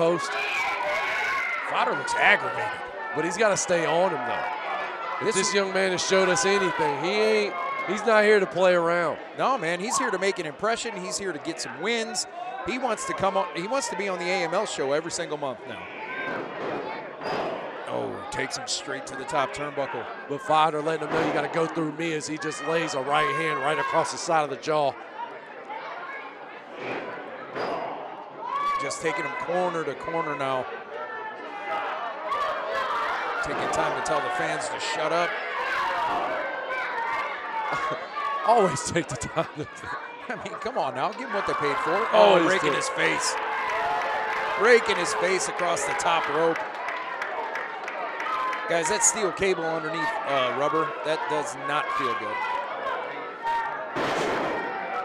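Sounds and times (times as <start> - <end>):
crowd chatter in a hall: 0.0 - 55.0.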